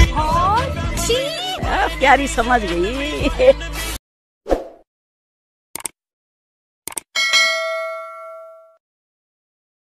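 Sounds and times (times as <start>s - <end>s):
bell ding ringing: 7.2s - 8.8s.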